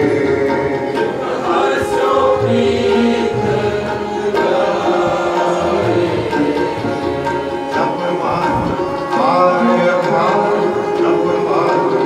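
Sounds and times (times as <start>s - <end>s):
bowed string accompaniment: 0.0s - 12.0s
men singing a hymn: 0.0s - 12.0s
tabla strokes: 0.0s - 12.0s.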